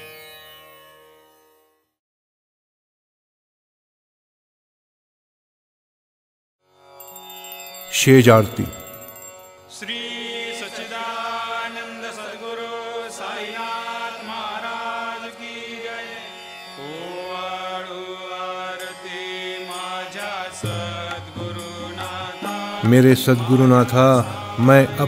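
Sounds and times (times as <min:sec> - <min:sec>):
devotional chant-like music: 0:07.9 - 0:25.0.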